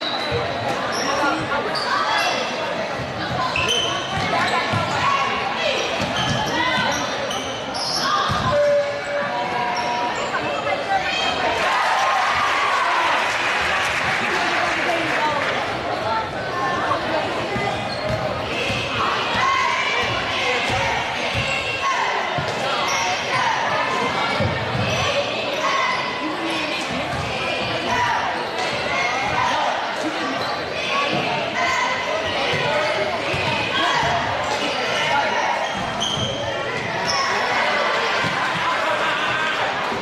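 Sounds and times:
chatter of many voices: 0:00.0 - 0:40.0.

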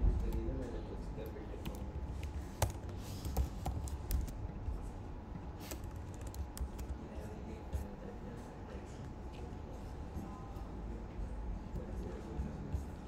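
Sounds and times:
typing on a keyboard: 0:05.7 - 0:07.0.

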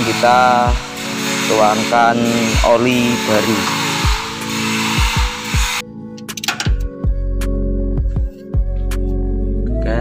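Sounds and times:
background music with deep drums: 0:00.0 - 0:10.0.

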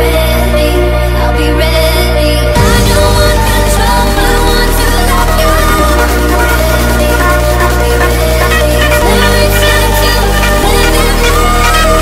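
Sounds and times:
deep bass notes: 0:00.0 - 0:12.0.

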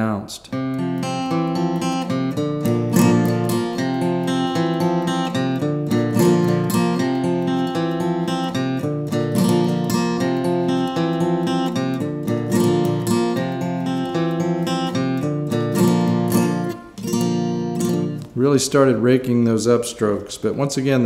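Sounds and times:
acoustic guitar strumming: 0:00.5 - 0:18.4.

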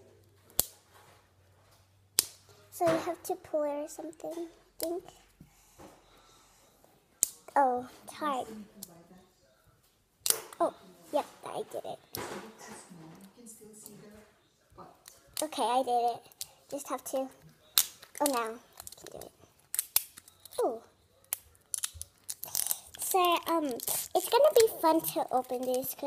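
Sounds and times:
crinkly plastic wrapping: 0:17.6 - 0:26.0
plastic zip strip ripping: 0:17.8 - 0:20.6.

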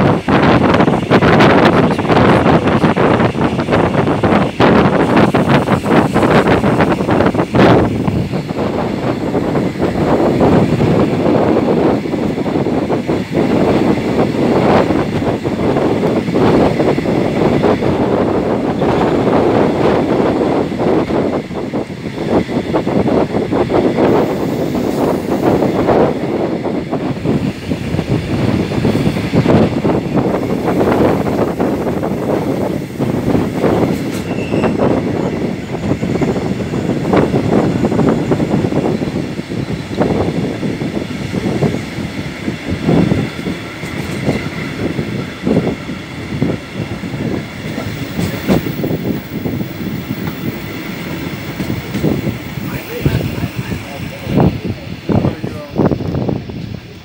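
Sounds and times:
train wheels rumbling on rails: 0:00.0 - 0:57.0
train clattering knocks: 0:26.9 - 0:55.3.

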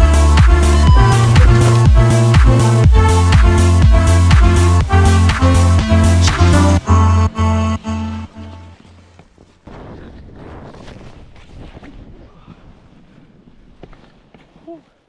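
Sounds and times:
electronic music with heavy bass: 0:00.0 - 0:08.3
snow and wind rushing: 0:09.6 - 0:14.3.

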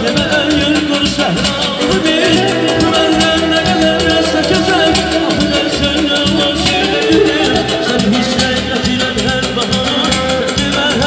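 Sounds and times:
electric guitar: 0:00.0 - 0:11.0
frame drum beat: 0:00.0 - 0:11.0
man singing into a microphone: 0:00.0 - 0:11.0.

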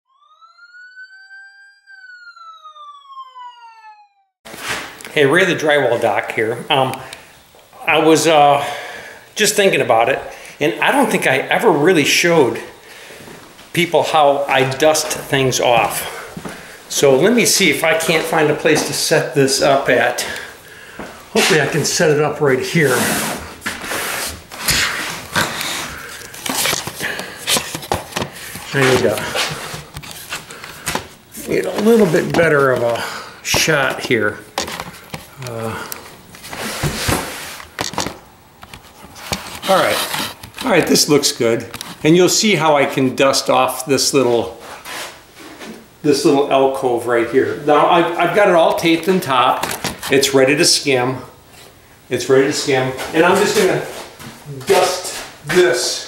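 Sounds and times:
siren-like whistling tone: 0:00.0 - 0:04.4.

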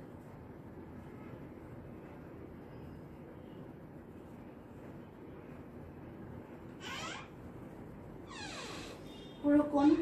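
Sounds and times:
marker squeaking on whiteboard: 0:06.7 - 0:07.5, 0:08.2 - 0:09.3.

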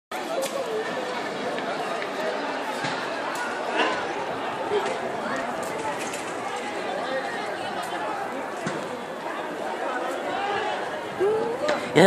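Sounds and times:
crowd chatter: 0:00.1 - 0:12.0.

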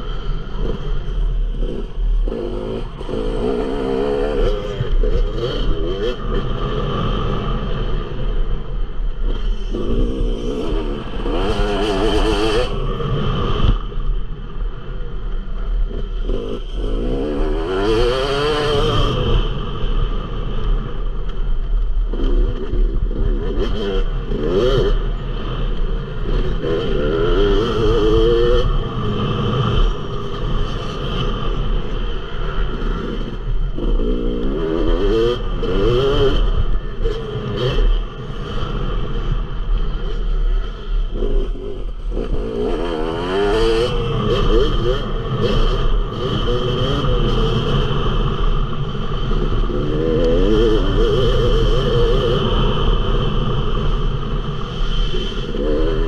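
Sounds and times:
motocross bike engine revving: 0:00.0 - 0:13.8, 0:15.8 - 0:20.9, 0:22.1 - 0:56.0.

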